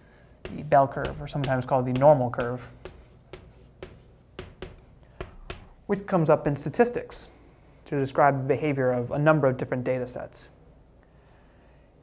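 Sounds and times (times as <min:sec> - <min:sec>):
chalk writing on blackboard: 0:00.0 - 0:05.8.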